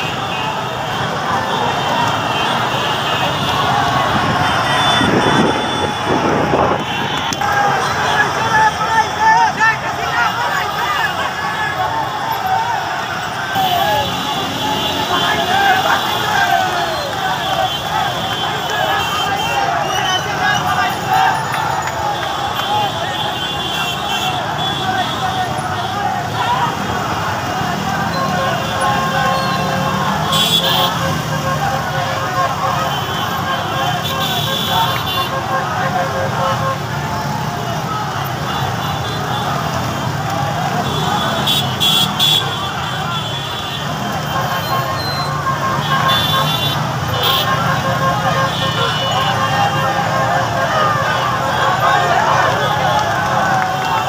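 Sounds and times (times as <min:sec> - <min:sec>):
crowd shouting: 0:00.0 - 0:54.0
motorcycle engines in traffic: 0:00.0 - 0:54.0.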